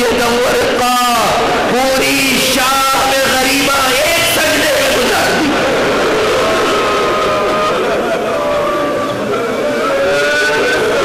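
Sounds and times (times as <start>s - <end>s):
crowd weeping and wailing: 4.6s - 11.0s.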